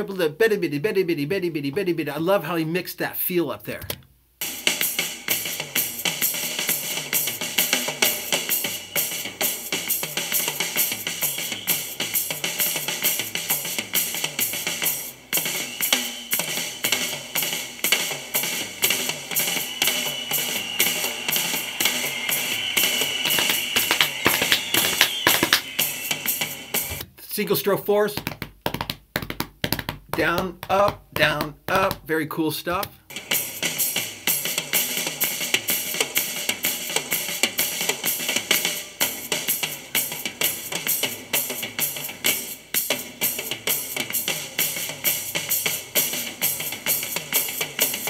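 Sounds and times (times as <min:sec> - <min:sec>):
rock drum kit solo: 0:04.4 - 0:26.9, 0:33.1 - 0:48.0.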